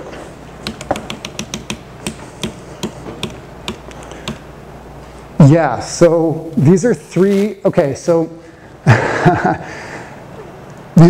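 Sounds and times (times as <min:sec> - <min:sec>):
sharp clicks and taps: 0:00.6 - 0:04.4.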